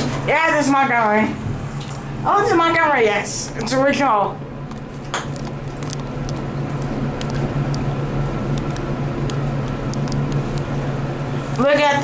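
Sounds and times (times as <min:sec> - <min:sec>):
elevator cab hum: 0:02.2 - 0:12.0.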